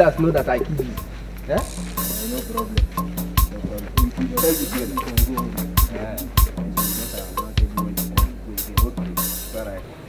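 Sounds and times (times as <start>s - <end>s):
music with steady drum beat: 0.0s - 9.8s.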